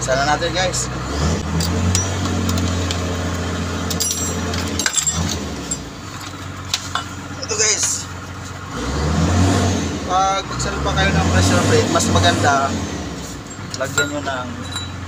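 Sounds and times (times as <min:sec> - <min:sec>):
engine running low hum: 0:00.0 - 0:15.0
metal clinks: 0:01.6 - 0:03.0, 0:03.9 - 0:08.0, 0:13.4 - 0:15.0.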